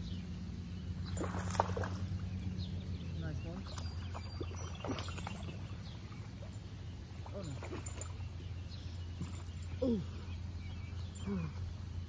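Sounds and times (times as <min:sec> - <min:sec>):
fish splashing: 0:01.0 - 0:02.2.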